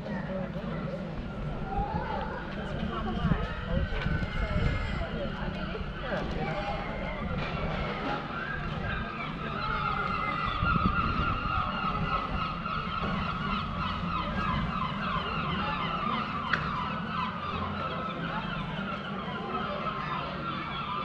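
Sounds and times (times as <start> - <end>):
birds chirping: 0.1 - 21.0.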